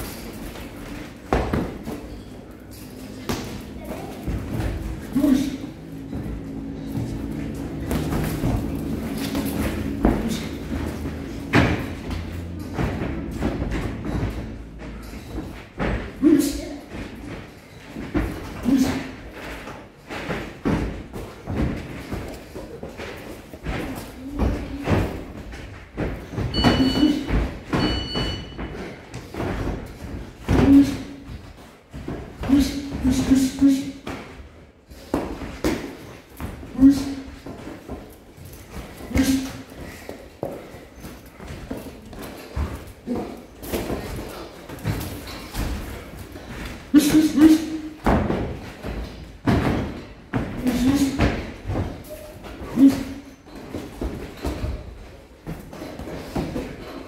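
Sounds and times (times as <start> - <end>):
boxers grunting: 3.2 - 17.5, 18.2 - 19.4, 26.6 - 27.7, 29.8 - 31.4, 32.2 - 34.4, 35.1 - 37.6, 38.9 - 49.2, 49.8 - 53.8.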